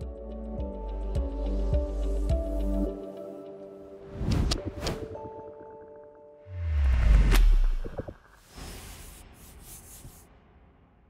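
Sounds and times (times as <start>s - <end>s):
soft airy swish: 8.4s - 10.4s.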